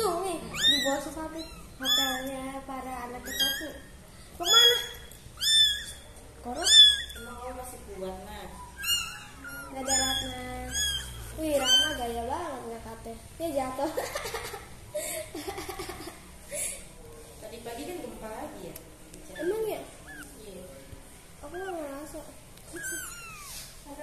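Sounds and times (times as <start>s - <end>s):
kittens mewing: 0.0s - 2.5s, 3.1s - 12.2s, 19.3s - 20.5s, 21.4s - 23.8s.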